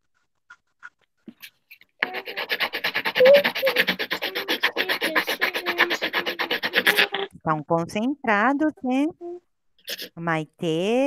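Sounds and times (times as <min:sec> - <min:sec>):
pencil scribbling on paper: 0:01.3 - 0:07.3, 0:09.9 - 0:10.2.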